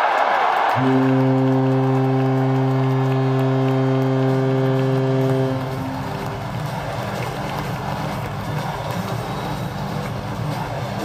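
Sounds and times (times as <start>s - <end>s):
crowd cheering: 0.0s - 11.0s
goal horn chord: 0.8s - 8.6s.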